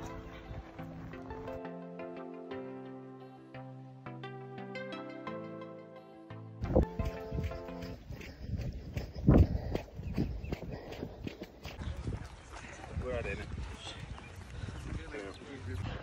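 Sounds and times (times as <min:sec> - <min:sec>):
footsteps on dirt: 0:00.0 - 0:01.6, 0:06.6 - 0:16.0.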